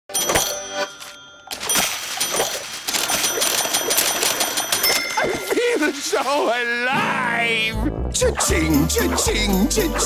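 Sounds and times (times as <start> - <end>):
cash register ding: 0.1 - 6.0
jingling clatter with high ringing: 0.1 - 6.3.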